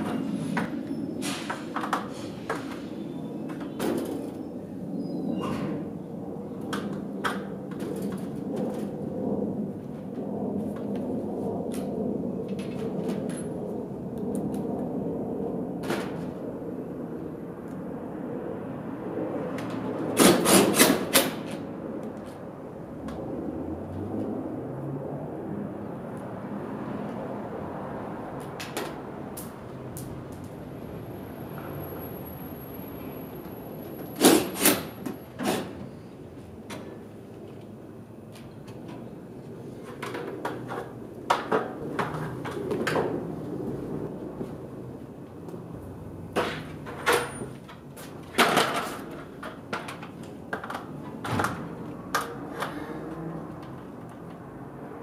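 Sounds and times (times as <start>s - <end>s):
hand tool bursts on sheet metal: 1.2s - 2.8s, 20.2s - 21.5s, 34.2s - 35.8s
shop noise: 20.1s - 21.6s, 31.1s - 37.0s.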